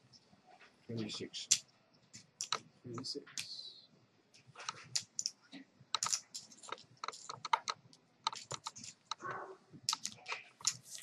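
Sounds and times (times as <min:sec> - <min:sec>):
poker chips clicking: 0:04.9 - 0:05.4, 0:06.0 - 0:07.7, 0:08.3 - 0:09.2.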